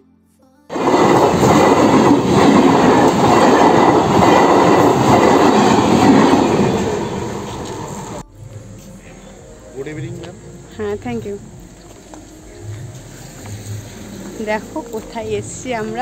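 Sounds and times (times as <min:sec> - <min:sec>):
train wheels on rails: 0:00.7 - 0:16.0.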